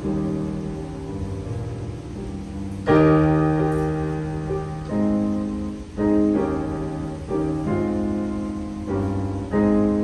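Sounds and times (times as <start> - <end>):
piano chords ringing: 0.0 - 10.0.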